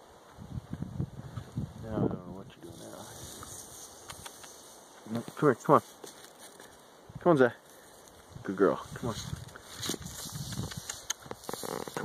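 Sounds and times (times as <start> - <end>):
rustling: 2.6 - 6.9, 7.6 - 12.0
footsteps on dry forest litter: 4.8 - 6.9, 9.1 - 10.6.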